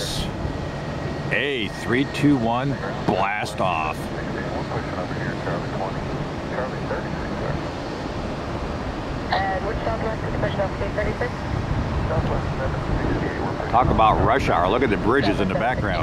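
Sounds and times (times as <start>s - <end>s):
distant jet engines rumbling: 0.0s - 16.0s.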